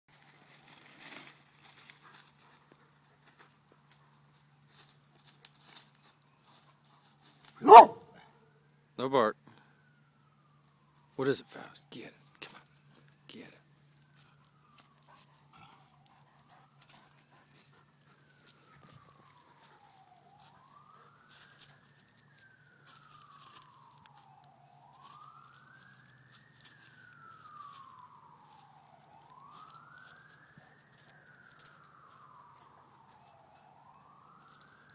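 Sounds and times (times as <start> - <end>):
faint siren wailing: 0.1 - 34.9.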